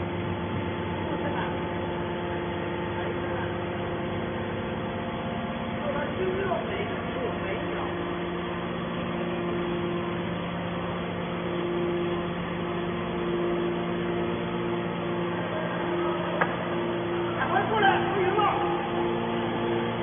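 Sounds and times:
hydraulic machine humming: 0.0s - 20.0s
higher machine tone: 7.8s - 20.0s.

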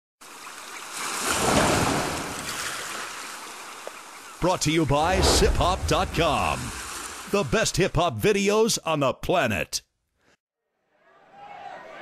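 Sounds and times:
ocean wave surging: 4.9s - 7.5s.

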